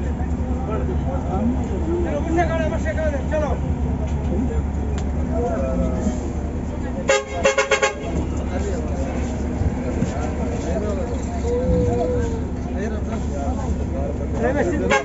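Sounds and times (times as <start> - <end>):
bus engine rumble: 0.0 - 15.0
vehicle horn short toots: 7.1 - 8.3.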